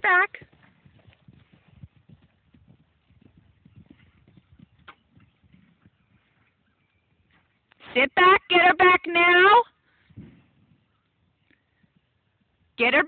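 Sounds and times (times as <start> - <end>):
horse hoofbeats on grass: 0.0 - 7.7.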